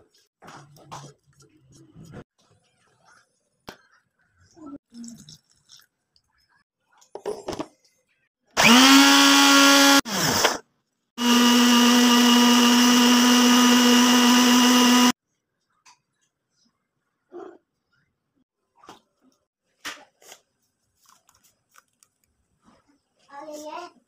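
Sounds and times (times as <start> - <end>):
electric blender grinding: 8.6 - 10.6, 11.2 - 15.2.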